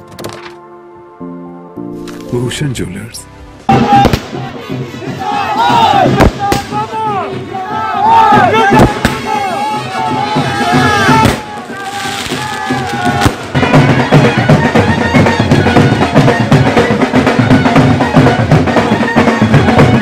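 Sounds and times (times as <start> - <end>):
band music: 1.8 - 20.0
noisy crowd: 3.5 - 20.0
firecrackers banging: 3.7 - 7.5, 8.4 - 18.0.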